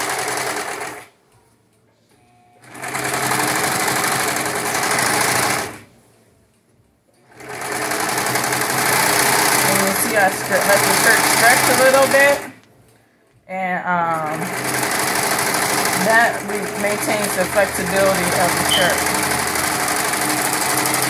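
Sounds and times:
overlock serger running: 0:00.0 - 0:01.1, 0:02.6 - 0:05.9, 0:07.2 - 0:12.6, 0:14.0 - 0:21.0.

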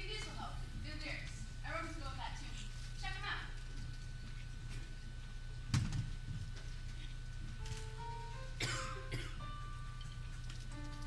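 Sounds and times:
person coughing: 0:08.6 - 0:09.4.

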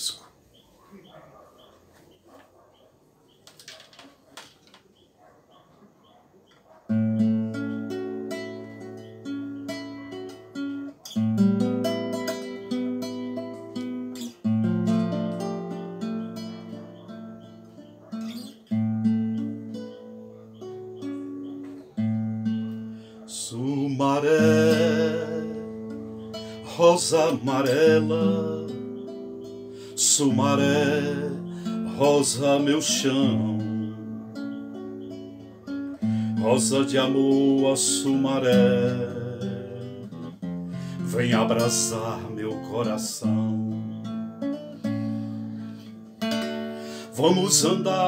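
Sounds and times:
classical guitar strummed chords: 0:06.9 - 0:48.0
man singing: 0:23.3 - 0:29.1, 0:29.9 - 0:34.5, 0:36.2 - 0:44.2, 0:47.0 - 0:48.0.

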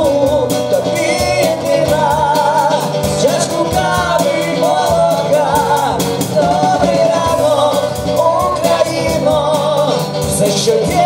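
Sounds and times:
drum kit beat: 0:00.0 - 0:11.0
man and woman singing: 0:00.0 - 0:11.0
strummed acoustic guitar: 0:00.0 - 0:11.0.

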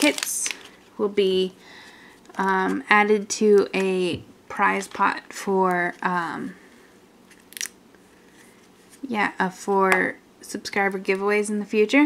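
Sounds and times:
plastic toy egg crackling: 0:00.0 - 0:00.8, 0:07.4 - 0:07.8.

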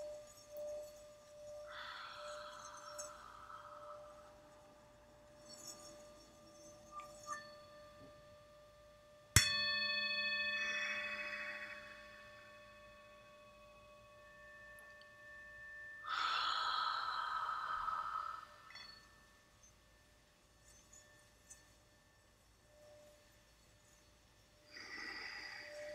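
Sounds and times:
soft hiss: 0:00.0 - 0:25.9
singing bowl strike ringing: 0:07.0 - 0:16.6.

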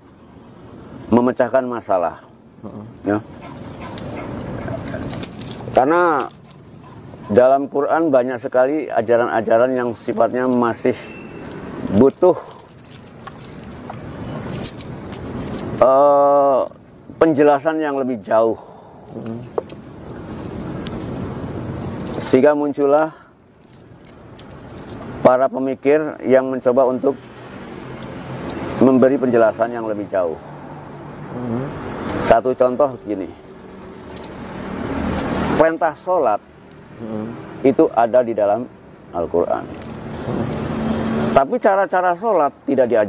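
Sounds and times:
man speaking: 0:01.1 - 0:03.3, 0:04.7 - 0:06.4, 0:07.2 - 0:11.2, 0:11.9 - 0:12.7, 0:15.8 - 0:19.6, 0:28.7 - 0:30.4, 0:31.3 - 0:33.4, 0:37.0 - 0:40.6, 0:41.3 - 0:43.0
faint clinks: 0:02.2 - 0:43.0.

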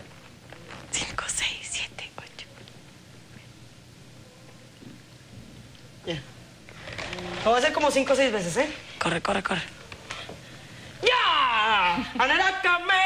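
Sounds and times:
soft whispering: 0:00.6 - 0:03.6.

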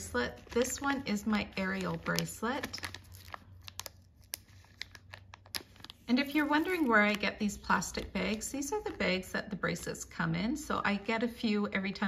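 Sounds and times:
plastic bag crinkling: 0:00.1 - 0:07.4.

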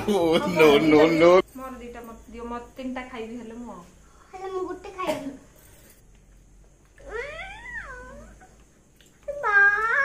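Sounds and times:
girl's whiny cat-like cry: 0:07.0 - 0:08.4, 0:09.3 - 0:10.0.

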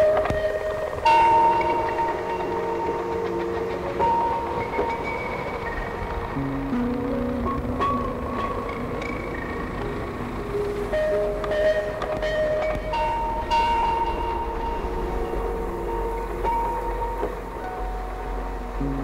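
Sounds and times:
ambient score with long held notes: 0:00.0 - 0:19.0
steady low rumble: 0:00.0 - 0:19.0.

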